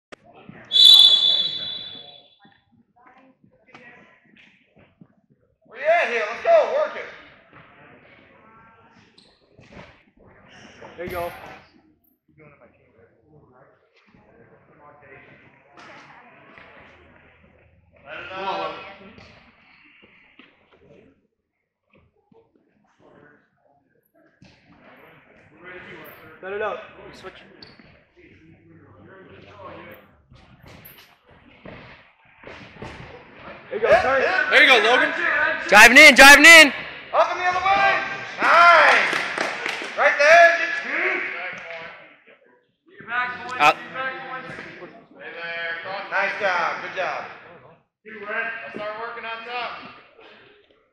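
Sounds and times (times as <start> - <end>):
man calling: 0.7 - 2.2, 35.7 - 36.8
man speaking: 33.9 - 38.1, 43.2 - 43.8
man yelling: 35.7 - 36.7.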